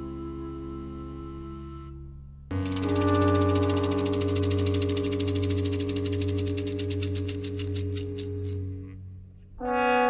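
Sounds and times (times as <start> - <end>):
synthesized drone low chord: 0.0 - 10.0
rapid high synth pulsing: 2.5 - 8.6.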